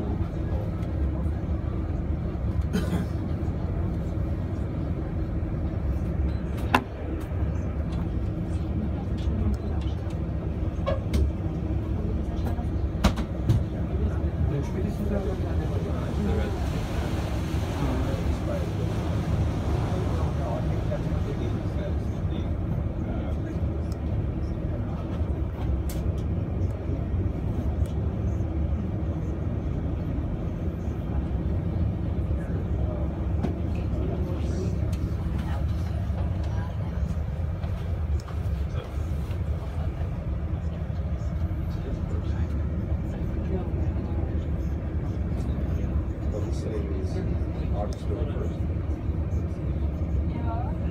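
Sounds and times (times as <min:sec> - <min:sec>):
boat engine low rumble: 0:00.0 - 0:50.9.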